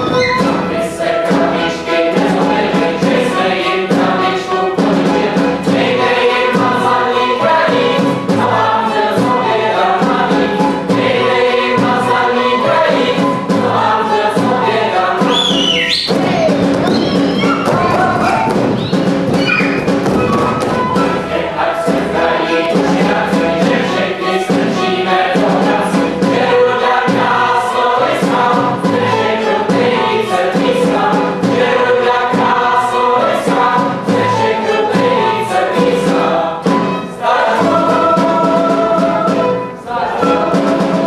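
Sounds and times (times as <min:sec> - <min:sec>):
folk band playing: 0:00.0 - 0:41.0
folk chorus singing: 0:00.0 - 0:41.0
high gliding voices calling out: 0:15.4 - 0:19.9.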